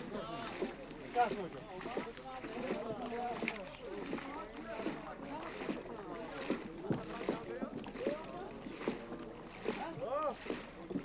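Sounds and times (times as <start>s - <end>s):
paddle knocks and splashes: 0.0s - 11.0s
voices chattering: 0.0s - 11.0s.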